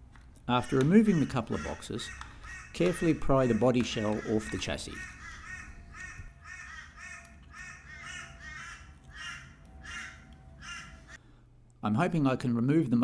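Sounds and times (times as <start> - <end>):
crow cawing: 0.5 - 11.2.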